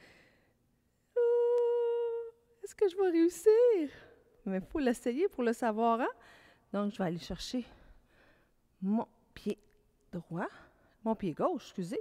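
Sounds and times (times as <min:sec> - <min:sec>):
woman humming held note: 0:01.2 - 0:02.4.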